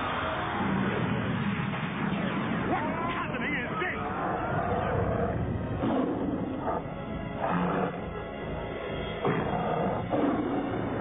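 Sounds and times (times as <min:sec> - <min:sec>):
dramatic music: 0:00.4 - 0:11.0
monster roaring growl: 0:04.0 - 0:08.3, 0:09.2 - 0:11.0.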